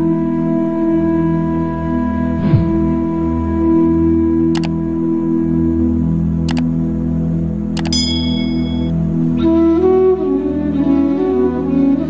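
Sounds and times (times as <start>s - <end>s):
steady ambient music: 0.0s - 12.0s
chime: 7.8s - 8.9s
mouse clicks: 7.8s - 8.9s.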